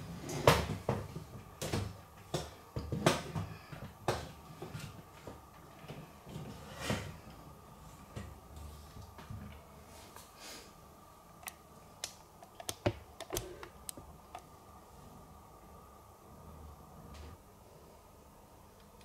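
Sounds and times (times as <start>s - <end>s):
faint low hum: 0.0s - 19.0s.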